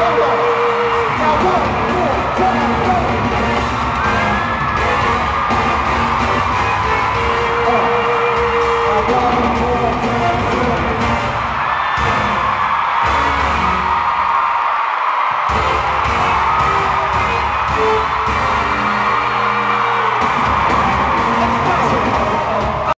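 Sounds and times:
live pop music with heavy bass: 0.0 - 14.3, 15.4 - 23.0
crowd screaming and whooping: 0.0 - 23.0.

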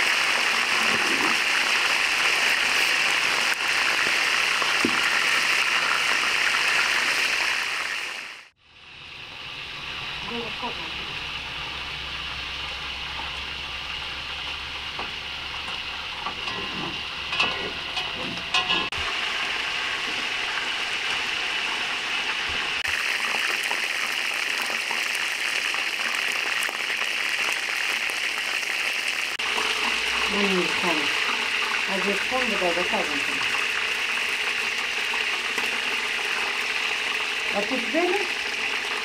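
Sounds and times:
chicken deep-frying in oil: 0.0 - 39.0.

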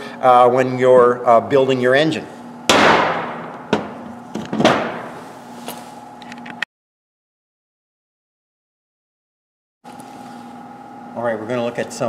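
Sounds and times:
knock on workbench: 2.8 - 5.1.

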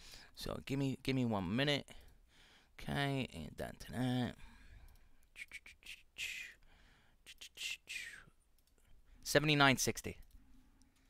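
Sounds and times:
man whispering: 5.3 - 8.4.

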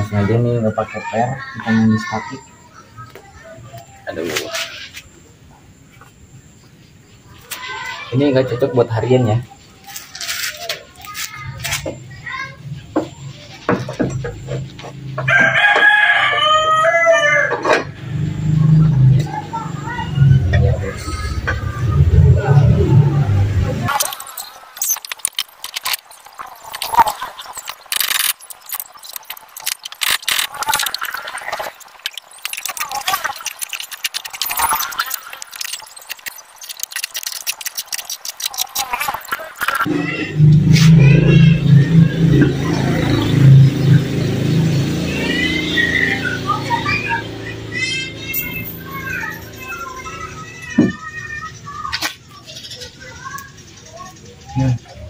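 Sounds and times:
rooster crowing: 15.2 - 18.2
hand tools clinking on metal: 48.3 - 49.8.

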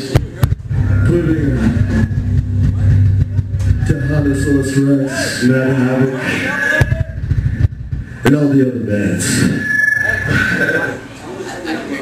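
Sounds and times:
low rumbling amplifier drone: 0.4 - 10.7
wavering tones: 0.6 - 11.2.

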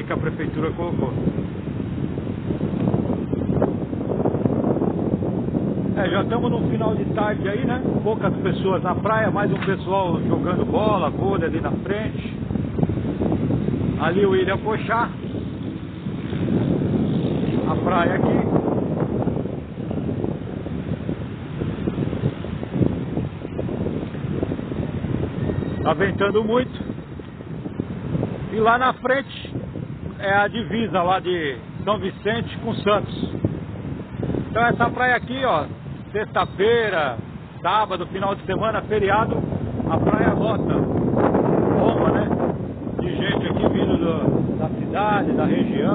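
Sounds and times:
wind buffeting microphone: 0.0 - 45.9.

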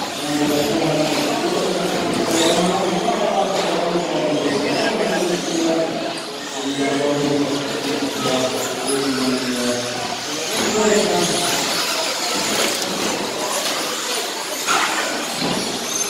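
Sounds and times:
toy car motors whining: 0.0 - 3.0, 4.3 - 16.0.

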